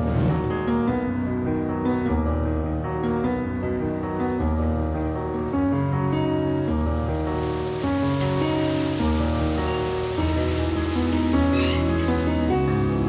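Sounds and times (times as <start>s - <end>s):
piano music: 0.0s - 13.0s
falling rain hiss: 3.0s - 13.0s.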